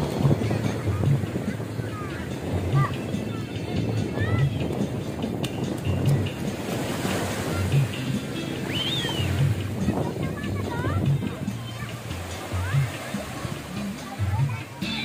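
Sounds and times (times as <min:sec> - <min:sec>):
small waves washing onto sand: 0:00.0 - 0:14.8
wind on microphone: 0:00.0 - 0:14.8
music with low beat: 0:00.0 - 0:15.0.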